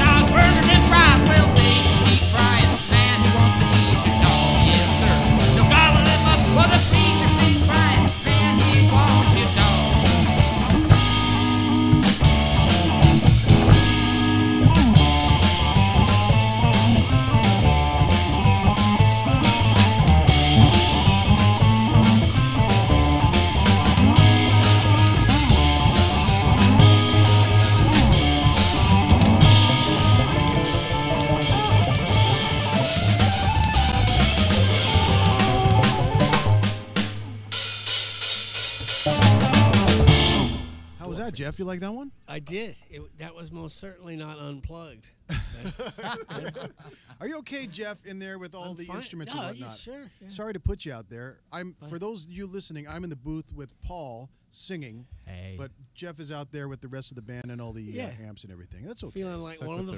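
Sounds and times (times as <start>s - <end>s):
electric guitar: 0.0s - 41.1s
rockabilly band playing: 0.0s - 41.8s
drum kit: 0.0s - 42.7s.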